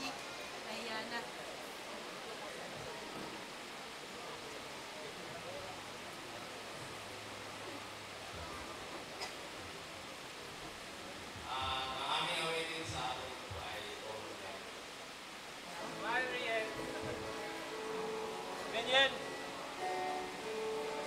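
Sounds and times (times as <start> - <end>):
faint murmuring voices: 0.0 - 21.0
room noise hiss: 0.0 - 21.0.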